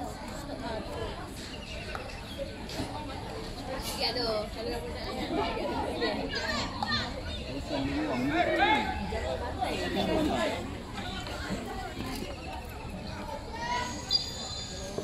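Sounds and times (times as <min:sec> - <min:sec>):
children calling and chattering: 0:00.0 - 0:15.0.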